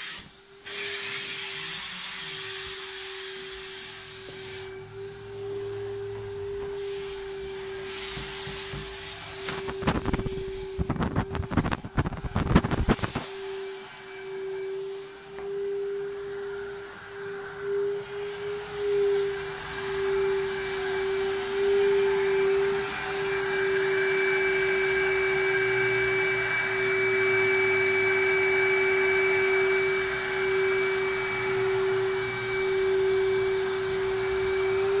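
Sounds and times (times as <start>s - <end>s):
carpet cleaning machine whine: 0.0s - 35.0s
higher whine: 8.8s - 35.0s.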